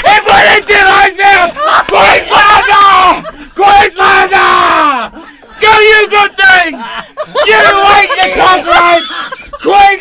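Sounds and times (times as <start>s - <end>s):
man yelling: 0.0s - 10.0s.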